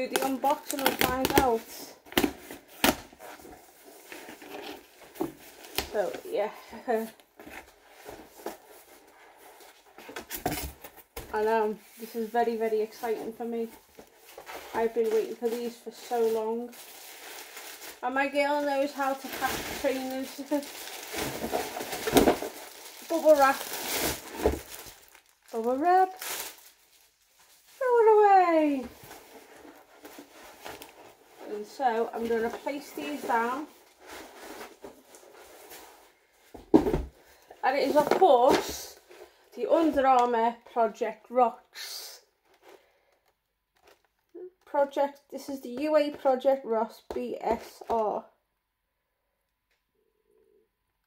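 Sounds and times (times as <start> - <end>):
cardboard box rustling: 0.2 - 26.7, 28.8 - 39.3.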